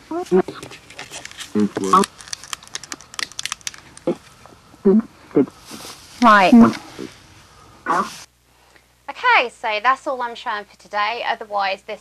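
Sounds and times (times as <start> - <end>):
small clicks and crackles: 0.3 - 4.5.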